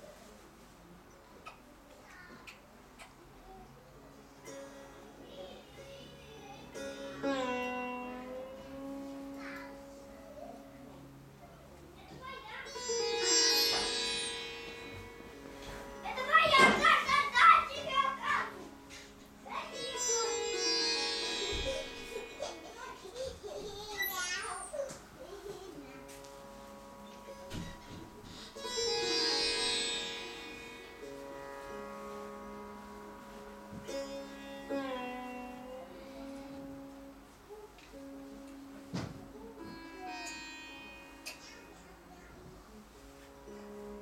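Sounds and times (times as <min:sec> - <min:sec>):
sitar plucked notes: 0:03.7 - 0:44.0
ringing drone tones: 0:13.0 - 0:24.9.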